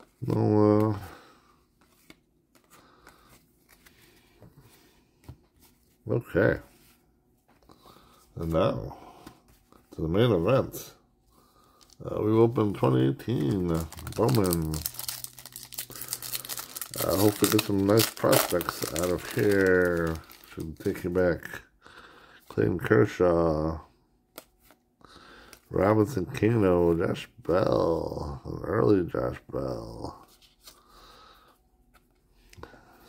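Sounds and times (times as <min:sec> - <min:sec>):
foil wrapper tearing and crinkling: 0:13.4 - 0:21.0.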